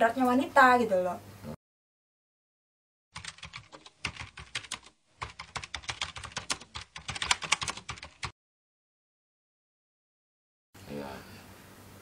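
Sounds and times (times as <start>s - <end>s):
computer keyboard typing: 3.2s - 8.4s.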